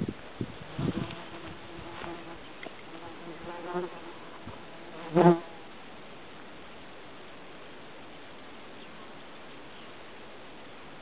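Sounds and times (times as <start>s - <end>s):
flying insect buzzing: 0.6s - 5.6s.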